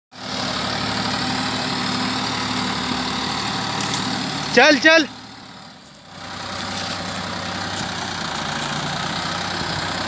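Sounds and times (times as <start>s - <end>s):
tractor diesel engine running: 0.1s - 10.0s.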